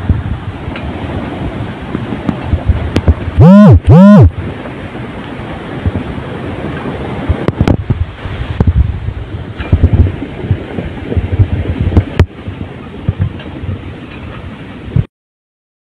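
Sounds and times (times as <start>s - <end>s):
floodwater rushing down street: 0.0s - 15.1s
wind buffeting microphone: 0.0s - 15.1s.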